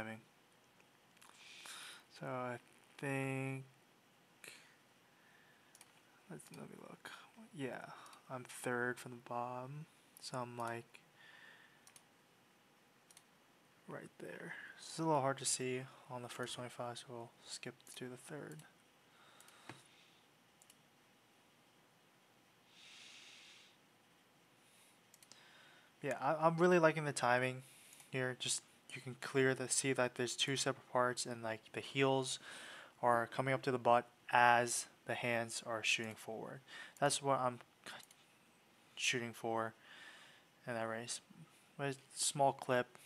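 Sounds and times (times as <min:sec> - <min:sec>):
soft breath: 0:01.3 - 0:02.1, 0:04.4 - 0:06.2, 0:11.1 - 0:11.9, 0:22.6 - 0:23.8, 0:24.6 - 0:26.0, 0:32.4 - 0:33.0, 0:36.7 - 0:37.0, 0:39.8 - 0:40.6
computer mouse clicks: 0:05.7 - 0:06.6, 0:11.8 - 0:12.1, 0:13.1 - 0:13.3, 0:17.8 - 0:18.7, 0:20.6 - 0:20.8, 0:25.1 - 0:25.4, 0:37.9 - 0:38.3.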